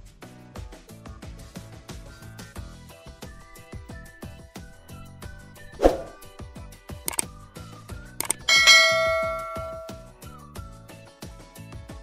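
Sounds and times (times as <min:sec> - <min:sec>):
bright bell ding: 0:08.2 - 0:10.0
short clicks: 0:08.2 - 0:10.0.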